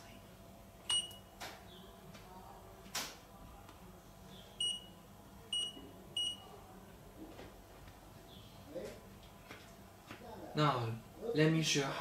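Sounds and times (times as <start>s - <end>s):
power meter beeping: 0.9s - 1.2s, 4.6s - 4.9s, 5.5s - 6.4s.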